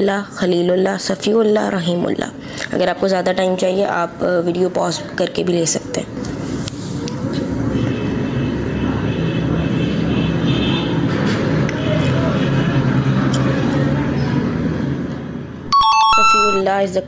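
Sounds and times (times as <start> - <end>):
high electronic beeps: 15.7 - 16.7.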